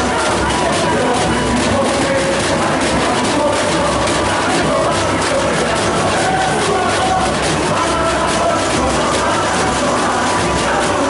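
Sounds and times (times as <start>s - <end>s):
samba drums and percussion: 0.0s - 11.0s.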